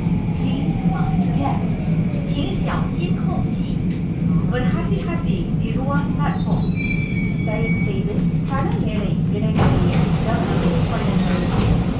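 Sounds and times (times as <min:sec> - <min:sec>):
high squeal of train: 0:00.0 - 0:11.9
low train hum: 0:00.0 - 0:11.9.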